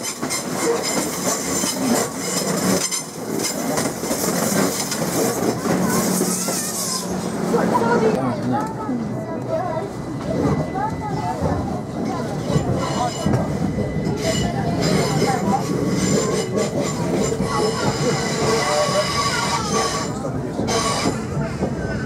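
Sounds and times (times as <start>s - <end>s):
passengers talking: 0.0s - 22.0s
train running and wheel noise: 0.0s - 22.0s.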